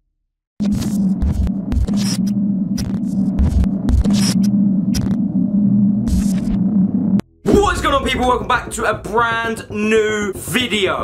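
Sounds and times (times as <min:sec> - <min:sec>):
low electronic drone: 0:00.6 - 0:07.5
deep bass thuds: 0:01.1 - 0:07.3.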